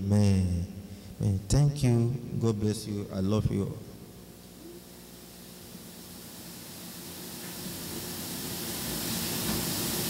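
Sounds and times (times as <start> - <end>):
faint low hum: 0.0 - 6.8
steady hiss: 0.0 - 10.0.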